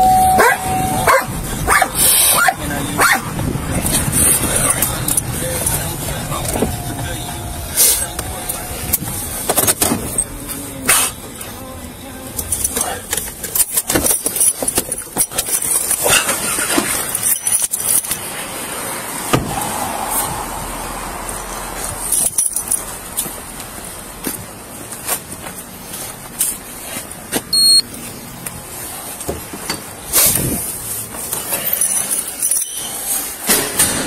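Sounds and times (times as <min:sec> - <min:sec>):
electronic beep: 0:00.0 - 0:01.1, 0:27.5 - 0:27.9.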